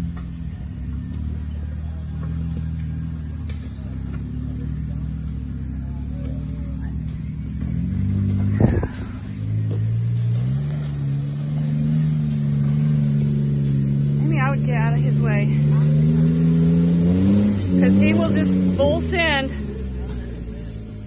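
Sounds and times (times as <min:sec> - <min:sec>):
car engine pulling under load: 0:00.0 - 0:21.0.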